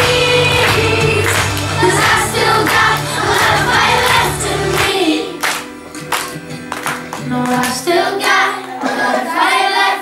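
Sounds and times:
children's choir singing: 0:00.0 - 0:05.6, 0:07.3 - 0:10.0
musical accompaniment with bass: 0:00.0 - 0:09.1.

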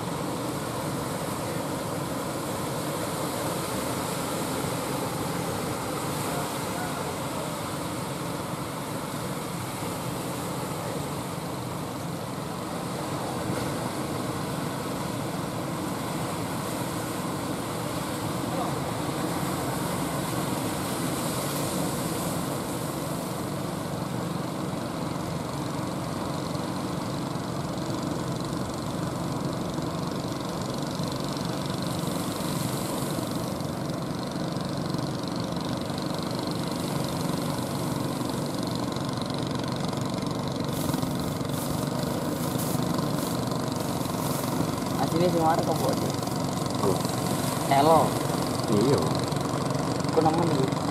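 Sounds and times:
boat engines running: 0:00.0 - 0:50.9.

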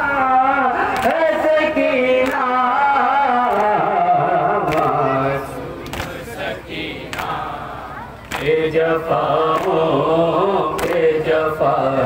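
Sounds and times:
men chanting over loudspeakers: 0:00.0 - 0:12.0.

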